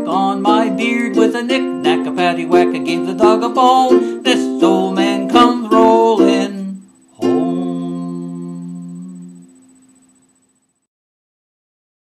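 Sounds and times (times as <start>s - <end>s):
ukulele strumming: 0.0s - 9.4s
person singing: 0.0s - 9.5s.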